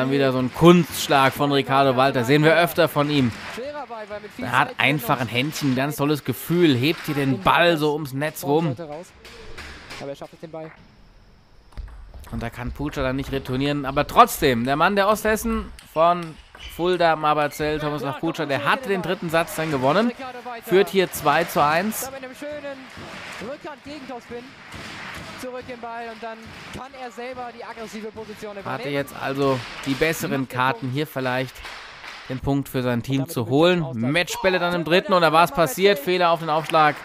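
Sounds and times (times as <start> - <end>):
man's voice: 0.0 - 9.1, 12.3 - 24.5, 25.3 - 31.6, 32.3 - 37.0.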